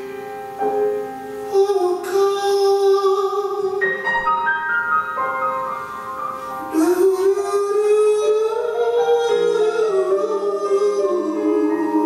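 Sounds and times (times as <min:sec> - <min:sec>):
grand piano playing slow notes: 0:00.0 - 0:12.0
person singing: 0:01.4 - 0:04.3, 0:06.6 - 0:12.0.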